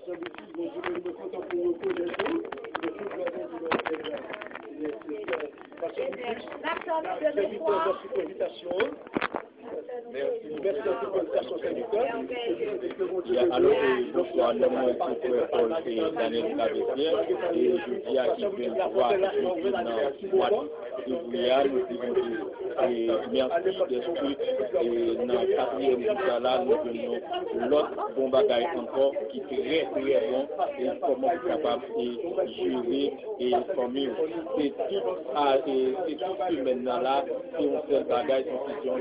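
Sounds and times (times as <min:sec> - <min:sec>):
chatter of many people: 0:00.0 - 0:39.0
murmur of overlapping voices: 0:00.0 - 0:39.0.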